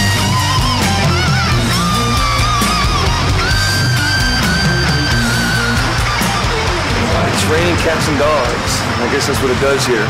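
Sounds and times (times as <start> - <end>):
lead guitar long high note: 0.0 - 9.7
heavy metal band playing live: 0.0 - 10.0.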